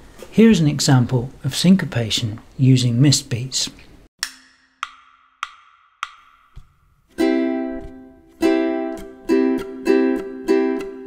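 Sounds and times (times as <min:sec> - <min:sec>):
wood-block clicks: 0:04.2 - 0:06.6.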